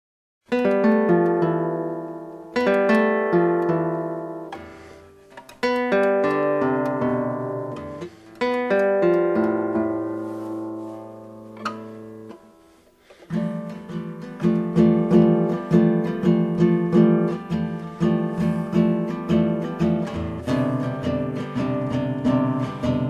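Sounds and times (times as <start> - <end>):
classical guitar chords: 0.5 - 23.0.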